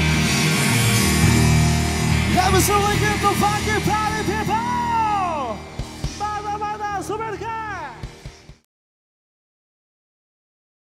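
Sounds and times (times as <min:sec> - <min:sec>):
funk rock band playing: 0:00.0 - 0:08.6.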